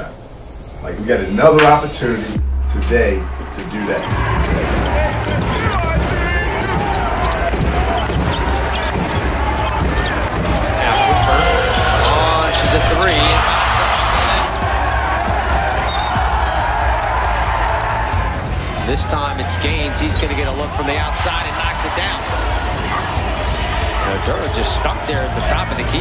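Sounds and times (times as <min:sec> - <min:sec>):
music with steady low bass: 0:02.4 - 0:03.5
arena voices and shouts: 0:02.8 - 0:26.0.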